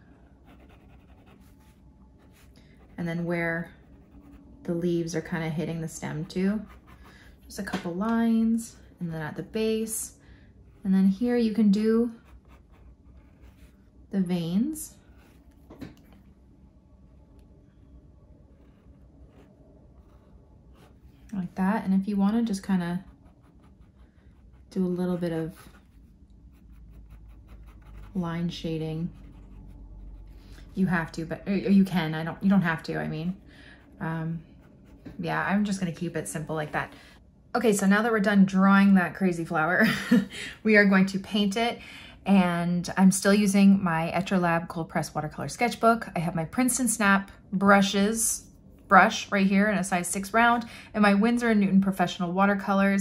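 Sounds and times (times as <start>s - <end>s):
pen scratching on paper: 0.4s - 3.0s, 12.1s - 13.8s, 23.0s - 31.2s, 32.7s - 35.5s.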